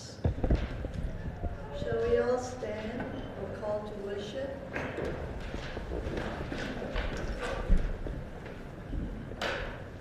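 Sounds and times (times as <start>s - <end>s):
knocks and creaks of seats: 0.2s - 3.3s
people shuffling: 0.3s - 10.0s.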